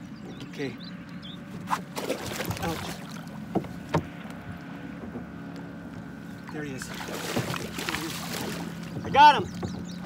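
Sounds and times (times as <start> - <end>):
sharp knocks on kayak hull: 3.5 - 4.2.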